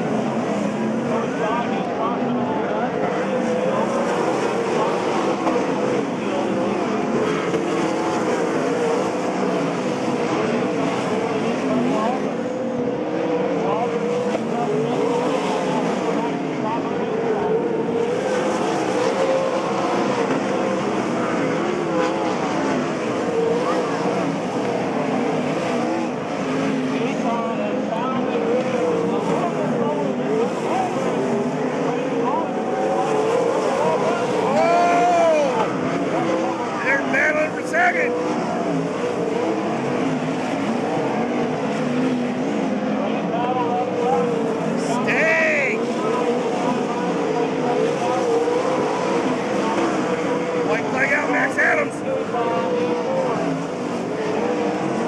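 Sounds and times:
race car engines running: 0.0s - 55.0s.

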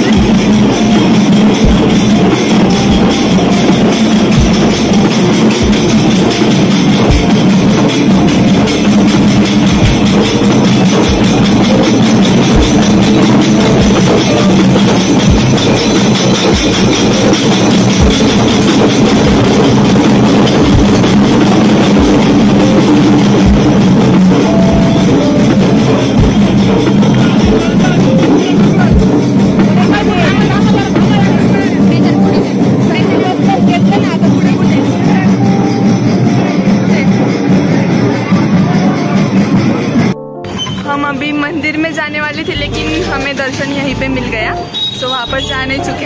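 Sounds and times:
hand cymbals clashing: 0.0s - 40.8s
drums beaten with sticks: 0.0s - 41.2s.

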